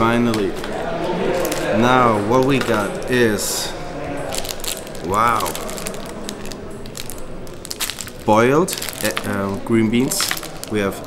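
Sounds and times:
plastic bag rustling and crinkling: 0.0 - 11.0.

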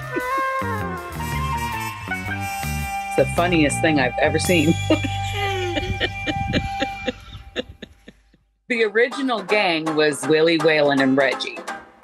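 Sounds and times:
woman laughing: 0.0 - 0.6, 4.5 - 8.4.

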